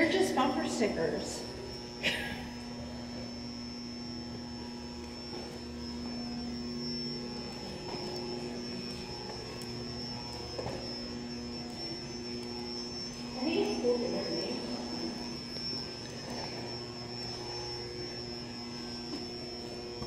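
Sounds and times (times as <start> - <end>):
high constant whine: 0.0 - 20.0
low electrical drone: 0.0 - 20.0.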